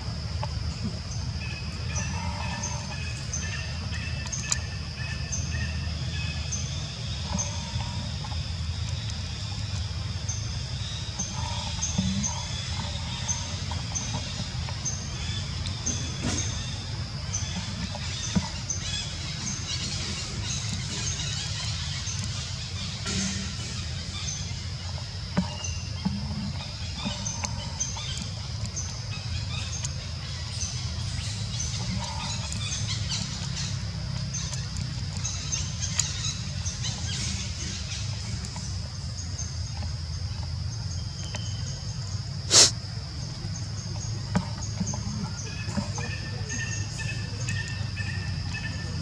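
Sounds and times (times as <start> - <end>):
birds chirping: 0.6 - 49.0.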